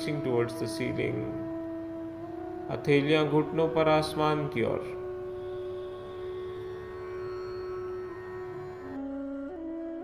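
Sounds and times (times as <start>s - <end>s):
slow instrumental music: 0.0s - 10.0s.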